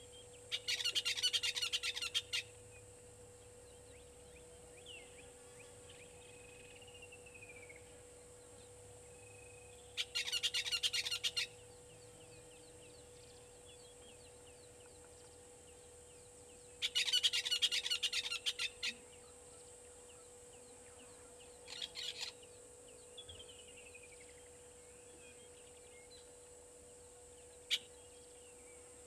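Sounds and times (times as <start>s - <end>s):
faint hum: 0.0s - 29.0s
bird calls harsh repeated notes: 0.5s - 2.5s, 10.0s - 11.5s.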